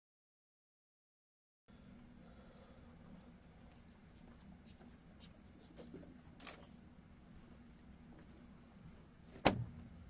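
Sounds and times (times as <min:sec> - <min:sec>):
low room hum: 0:01.7 - 0:10.0.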